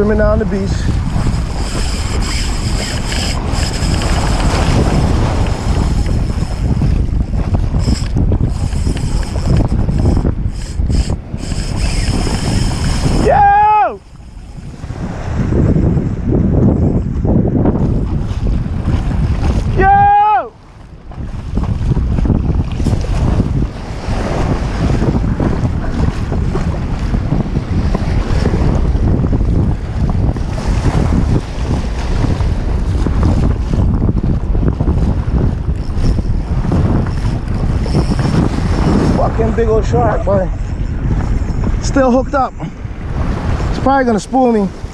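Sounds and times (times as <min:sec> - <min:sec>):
surf washing along beach: 0:00.0 - 0:44.9
wind buffeting microphone: 0:00.0 - 0:44.9.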